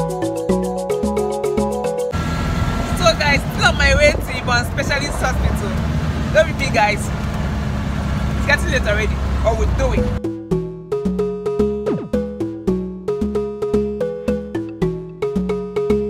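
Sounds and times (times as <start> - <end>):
background music: 0.0 - 5.7, 8.7 - 16.0
auto-rickshaw engine rumble: 2.1 - 10.2.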